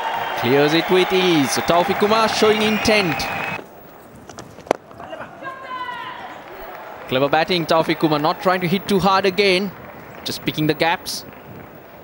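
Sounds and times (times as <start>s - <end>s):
low stadium ambience: 0.0s - 12.0s.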